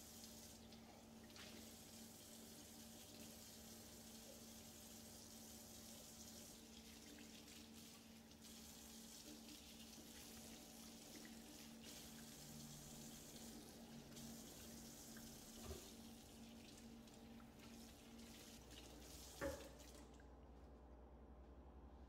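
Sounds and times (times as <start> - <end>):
tap water splashing into sink: 13.2 - 20.3.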